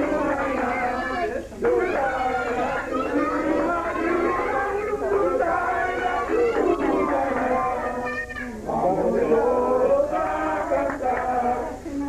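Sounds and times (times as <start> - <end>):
people singing: 0.0 - 12.0.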